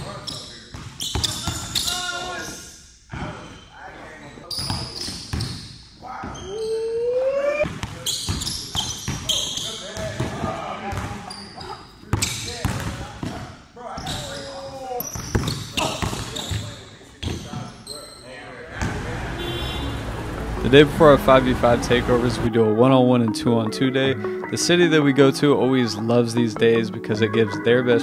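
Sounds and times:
sneakers squeaking: 0.0 - 13.4, 14.0 - 20.4.

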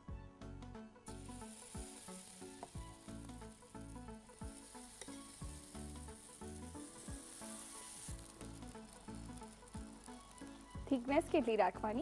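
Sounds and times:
background music with steady beat: 0.0 - 12.0
batter sizzling on a hot pan: 1.0 - 12.0.

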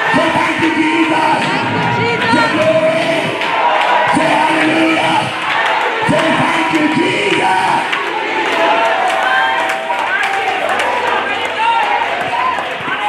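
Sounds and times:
man speaking on microphone: 0.0 - 3.4, 4.0 - 5.4, 6.0 - 7.9
congregation shouting and praising: 0.0 - 13.0.

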